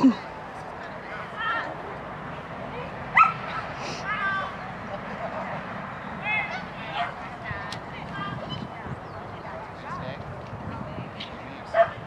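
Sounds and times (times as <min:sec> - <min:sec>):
dog barking and yipping: 0:03.2 - 0:03.4.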